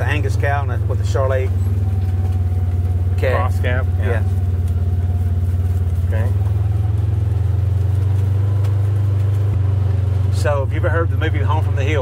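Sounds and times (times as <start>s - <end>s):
utility vehicle engine humming: 0.0s - 12.0s.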